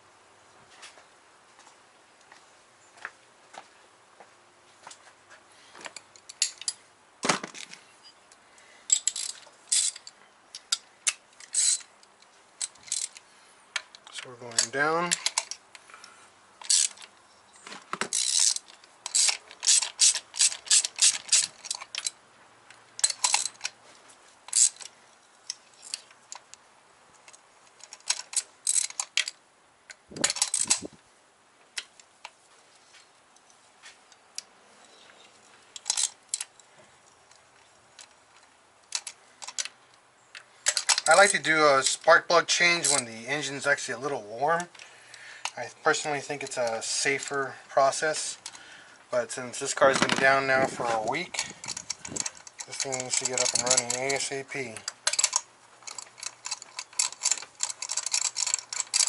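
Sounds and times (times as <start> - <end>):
hand ratchet clicking: 11.4 - 11.9, 16.6 - 17.0, 18.1 - 22.1, 24.5 - 24.9, 51.3 - 59.0.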